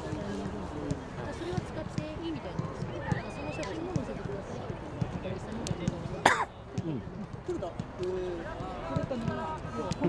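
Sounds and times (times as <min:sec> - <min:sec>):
low chatter of voices: 0:00.0 - 0:10.0
person coughing: 0:06.2 - 0:06.5.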